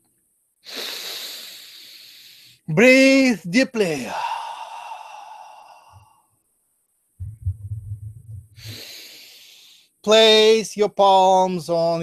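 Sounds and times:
man exhaling deeply: 4.0 - 6.2, 8.6 - 9.8.

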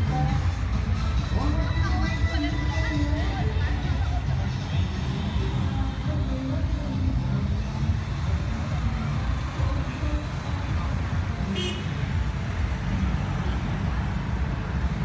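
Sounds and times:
low rumble of traffic: 0.0 - 15.0.

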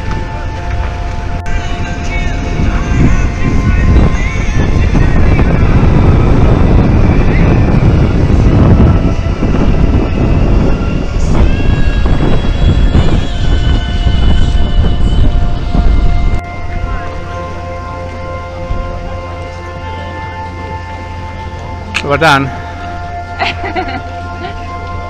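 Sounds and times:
wind buffeting microphone: 0.0 - 20.7
music with long held notes: 0.0 - 25.0.

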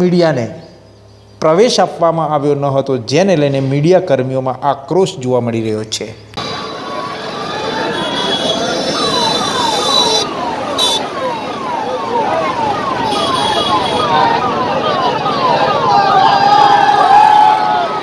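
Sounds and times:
crowd voices: 6.4 - 18.0
siren sweeping down: 6.4 - 18.0.

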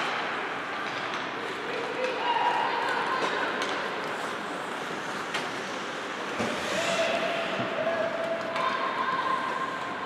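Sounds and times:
arena noise: 0.0 - 10.0
skate blades scraping ice: 2.8 - 7.8.

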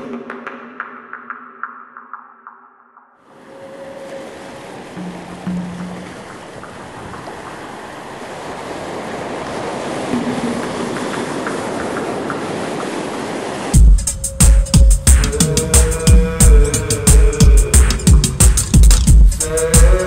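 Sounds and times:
ocean waves breaking: 3.2 - 20.0.

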